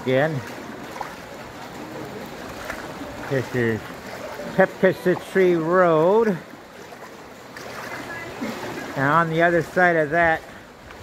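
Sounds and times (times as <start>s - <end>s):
floodwater swishing around legs: 0.0s - 11.0s.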